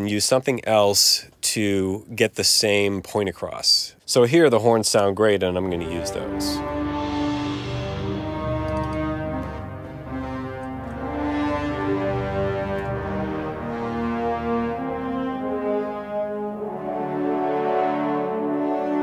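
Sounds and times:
orchestral brass melody: 5.6s - 19.0s.

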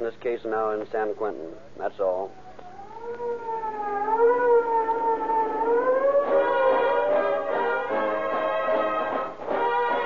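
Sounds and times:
police siren wailing: 2.2s - 10.0s.

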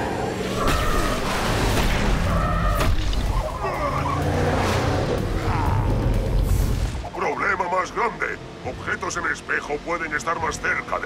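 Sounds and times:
tyres skidding and squealing: 0.0s - 11.0s.

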